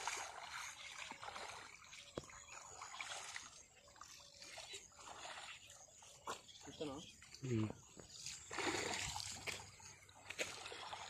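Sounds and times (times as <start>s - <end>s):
pond water splashing: 0.0s - 11.0s.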